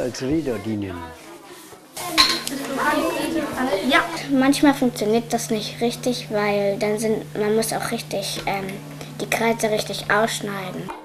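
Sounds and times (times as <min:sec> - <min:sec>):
children's voices: 0:00.3 - 0:11.0.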